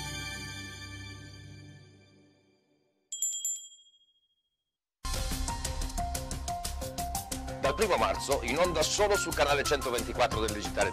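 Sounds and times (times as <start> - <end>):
bright chime: 3.1 - 4.0.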